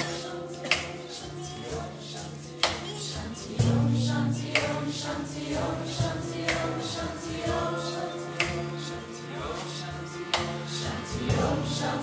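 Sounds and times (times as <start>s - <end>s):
acoustic band with strummed guitars: 0.0s - 12.0s
group chanting: 0.0s - 12.0s.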